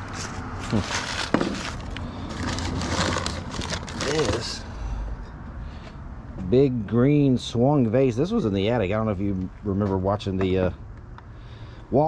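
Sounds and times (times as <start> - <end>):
cardboard and newspaper rustling: 0.0 - 4.6.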